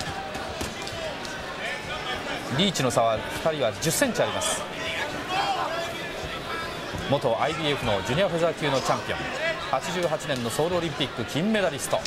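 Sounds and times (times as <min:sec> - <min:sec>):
crowd murmuring: 0:00.0 - 0:12.0.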